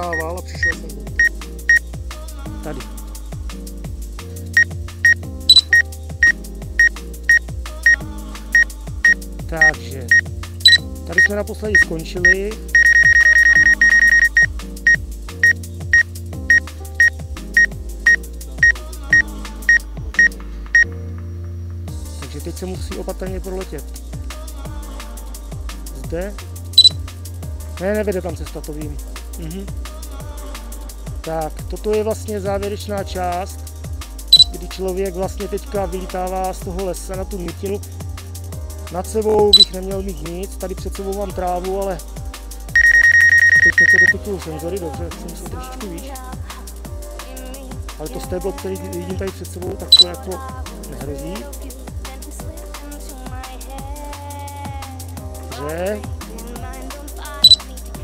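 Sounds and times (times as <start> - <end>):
electronic music with kick drum: 0.0 - 20.9, 21.9 - 58.0
rapidly pulsing alarm beep: 0.1 - 1.3, 4.6 - 7.0, 8.6 - 20.9, 42.8 - 44.2
short high warning beeps: 4.6 - 6.9, 9.6 - 10.8, 12.8 - 14.5, 42.8 - 44.1.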